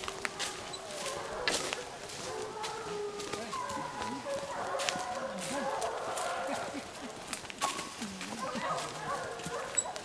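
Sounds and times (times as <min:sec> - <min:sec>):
hunting hounds baying: 0:00.0 - 0:10.0.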